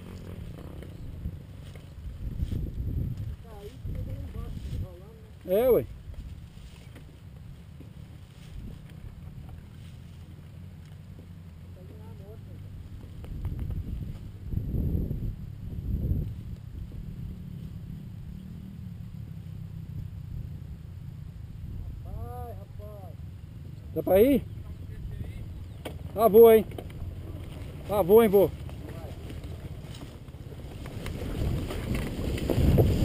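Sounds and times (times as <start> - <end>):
motorcycle engines idling and revving: 0.0 - 33.0.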